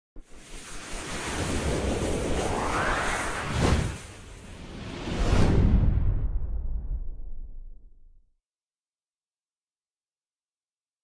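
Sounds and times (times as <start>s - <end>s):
rushing whoosh: 0.2s - 7.7s.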